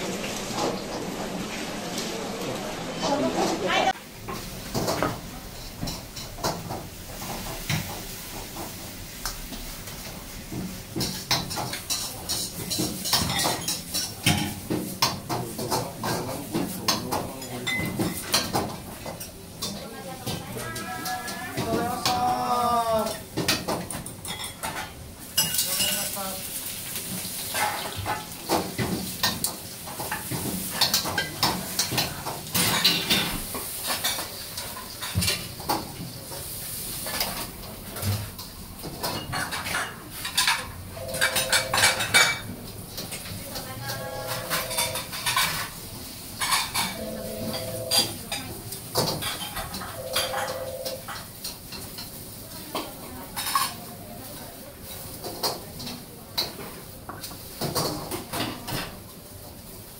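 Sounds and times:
stir-fry sizzle: 0:00.0 - 0:59.9
ladles and pots clanking: 0:02.5 - 0:59.9.

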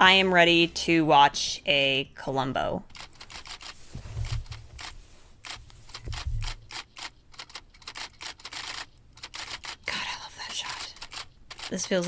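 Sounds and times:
typewriter keys clacking: 0:05.5 - 0:09.8, 0:10.7 - 0:12.0.

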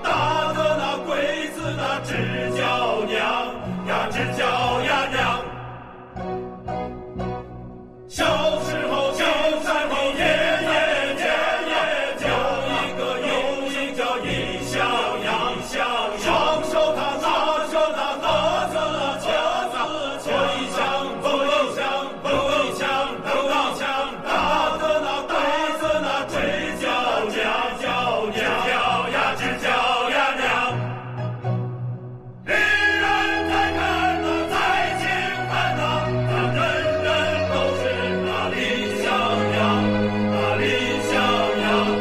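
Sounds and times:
choir singing with instruments: 0:00.0 - 0:42.0.

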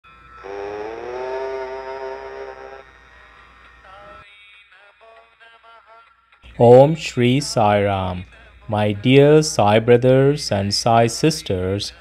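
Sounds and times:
long held tone with overtones: 0:00.1 - 0:03.9.

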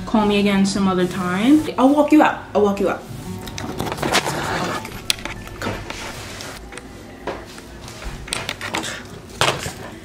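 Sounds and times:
camera handling rustling and bumps: 0:03.5 - 0:06.1.

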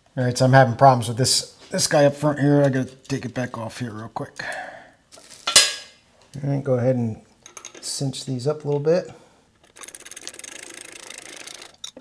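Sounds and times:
ratcheting wrench clicking: 0:09.6 - 0:12.0.

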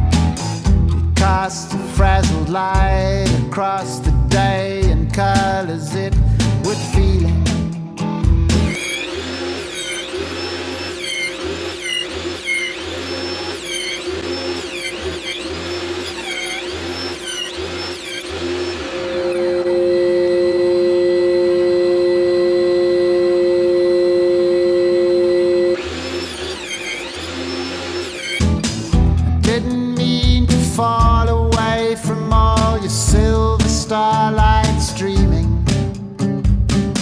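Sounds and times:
table saw motor humming: 0:08.4 - 0:29.2.

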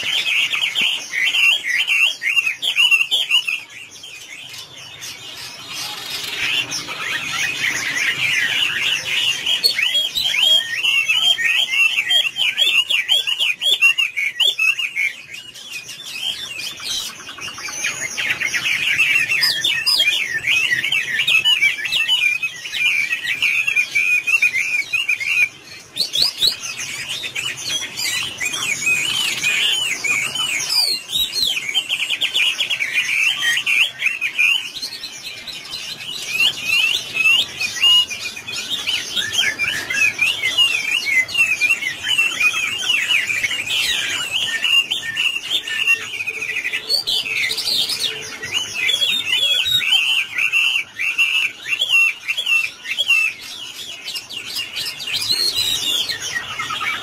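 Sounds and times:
bird singing whistled notes: 0:00.0 - 0:57.0.

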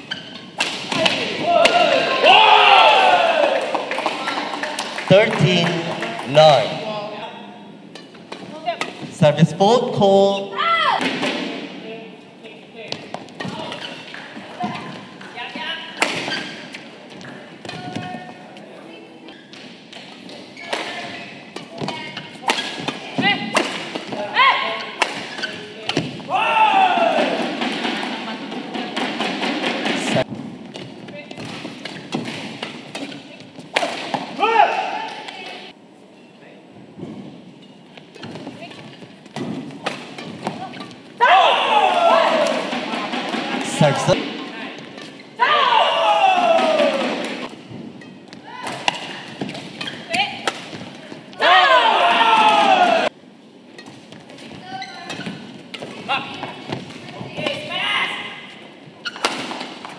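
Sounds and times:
players shouting: 0:01.0 - 0:03.9, 0:26.2 - 0:27.9, 0:34.4 - 0:35.6, 0:41.2 - 0:44.4, 0:45.4 - 0:47.5, 0:51.3 - 0:53.2.

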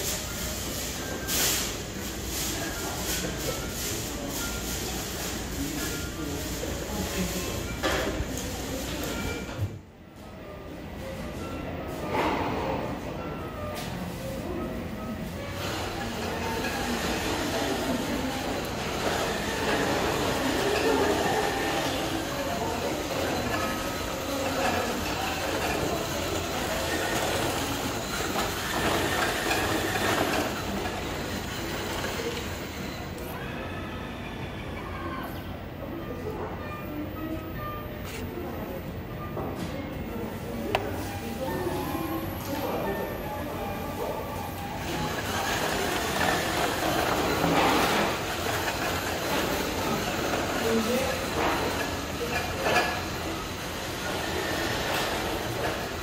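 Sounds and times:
wheeled robot driving on tiles: 0:23.1 - 0:32.6.

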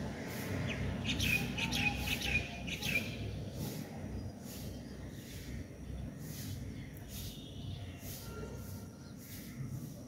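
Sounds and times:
low background noise: 0:00.0 - 0:10.0
bird chirping: 0:00.3 - 0:10.0.

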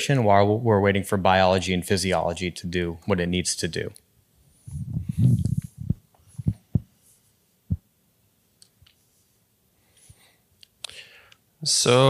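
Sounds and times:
soft low thumps: 0:04.7 - 0:07.0.

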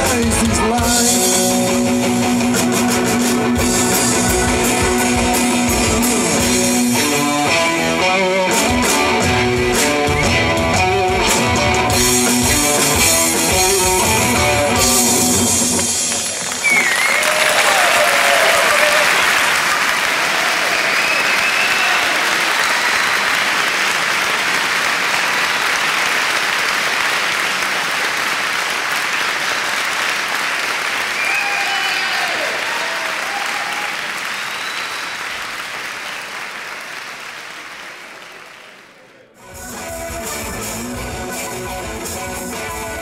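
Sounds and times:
audience applauding and cheering: 0:11.9 - 0:43.0.

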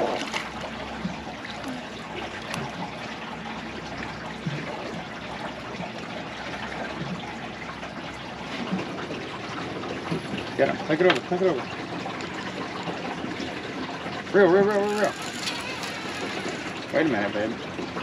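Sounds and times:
water trickling and sloshing: 0:00.0 - 0:18.0.

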